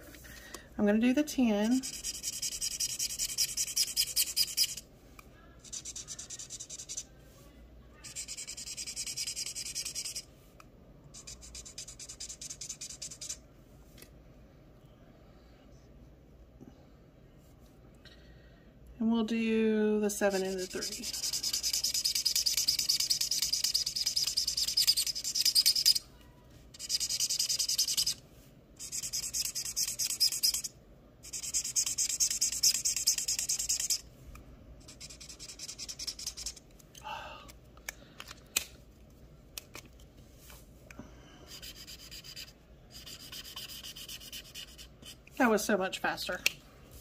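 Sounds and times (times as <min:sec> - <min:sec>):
marker pen scribbling on paper: 0:01.7 - 0:04.8, 0:05.6 - 0:07.1, 0:08.0 - 0:10.2, 0:11.1 - 0:13.4, 0:20.3 - 0:26.0, 0:28.8 - 0:34.0, 0:34.9 - 0:36.6, 0:41.5 - 0:45.2.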